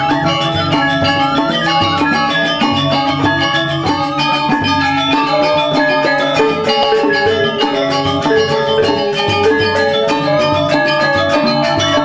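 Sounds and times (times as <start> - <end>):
metallophones struck with mallets: 0.0 - 12.0.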